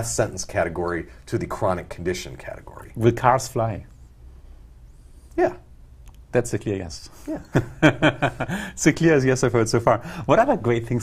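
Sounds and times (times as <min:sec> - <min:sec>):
low steady hum: 0:00.0 - 0:11.0
man saying yeah: 0:05.4 - 0:05.6.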